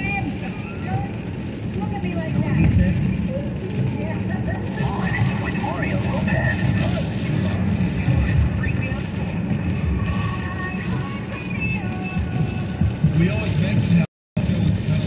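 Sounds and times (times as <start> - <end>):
car road noise on wet road: 0.0 - 15.0
faint car radio talk: 0.0 - 15.0.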